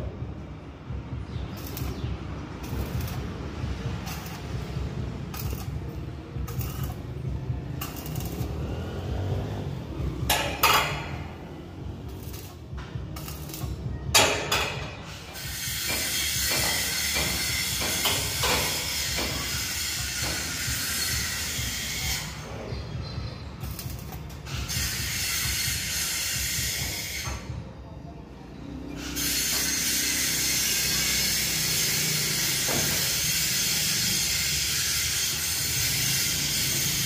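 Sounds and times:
arc welding crackling: 0.9 - 27.3, 29.0 - 37.0.

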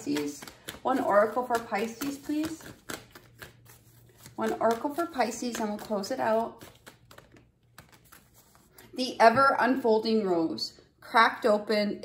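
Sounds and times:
cards being shuffled: 0.0 - 8.9.

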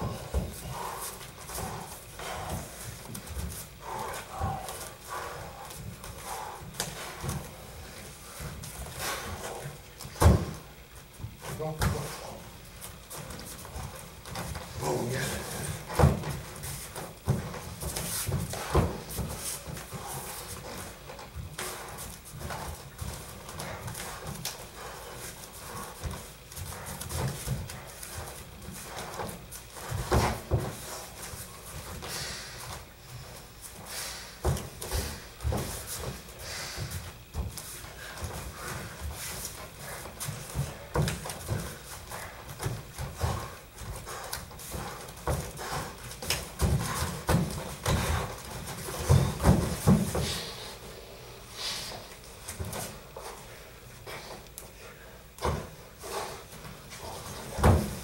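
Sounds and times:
hands and bodies slapping: 0.0 - 50.5
bare feet thumping on foam mats: 0.0 - 50.6, 55.4 - 58.0.

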